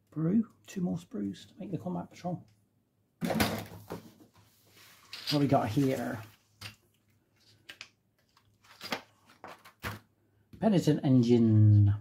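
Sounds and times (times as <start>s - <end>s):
magazine pages rustling: 7.4s - 10.0s.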